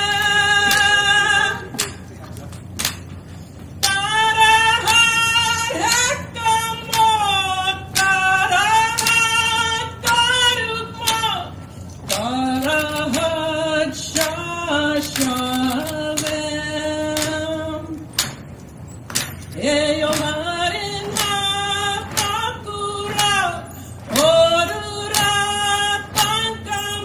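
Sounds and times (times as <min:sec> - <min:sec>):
drum beats: 0:18.2 - 0:26.8.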